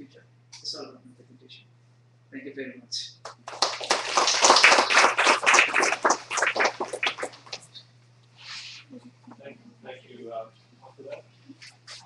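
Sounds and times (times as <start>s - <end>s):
audience applauding: 3.3s - 7.6s.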